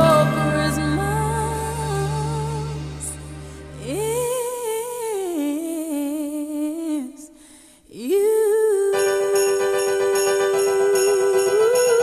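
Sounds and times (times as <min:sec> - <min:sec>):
person singing a long note: 0:00.0 - 0:03.1
sparse backing music: 0:00.0 - 0:04.7.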